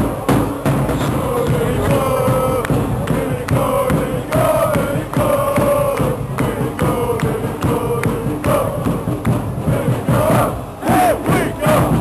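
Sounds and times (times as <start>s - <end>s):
crowd chanting and shouting: 0.0s - 12.0s.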